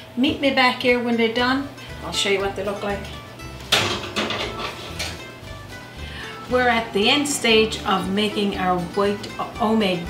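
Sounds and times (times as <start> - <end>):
light background music: 0.0 - 10.0
pan knocking onto wire rack: 3.7 - 5.2.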